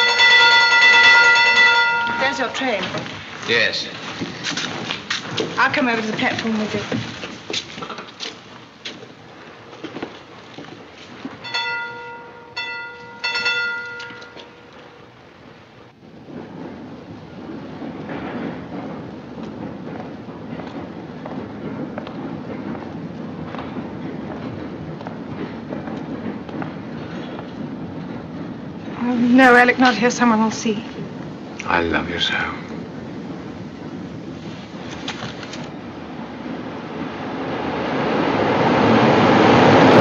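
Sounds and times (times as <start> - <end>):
steam locomotive whistle: 0.0 - 2.6
train rumbling: 0.0 - 40.0.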